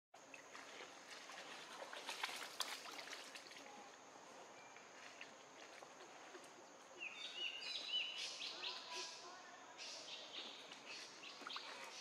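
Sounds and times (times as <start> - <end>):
bird chirps: 7.0 - 12.0.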